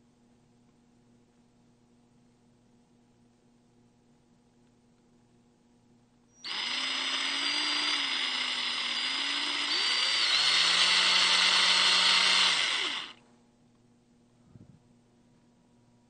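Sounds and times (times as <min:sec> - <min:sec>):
power drill motor whine: 0:06.4 - 0:13.2.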